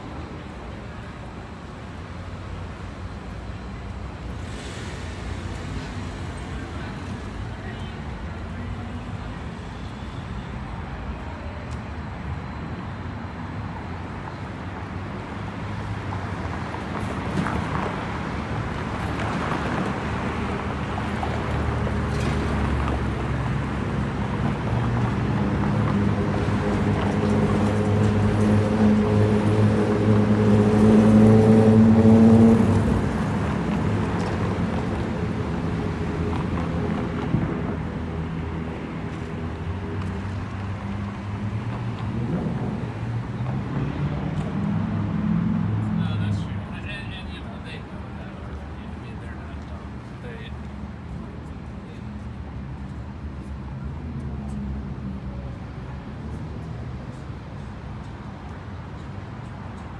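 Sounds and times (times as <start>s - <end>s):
street traffic: 0.0s - 59.9s
vehicle engine running nearby: 14.8s - 59.9s.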